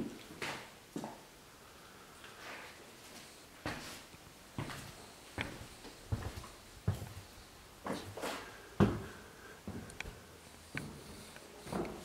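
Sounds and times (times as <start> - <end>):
footsteps on wooden floorboards: 4.6 - 9.9, 10.8 - 12.0.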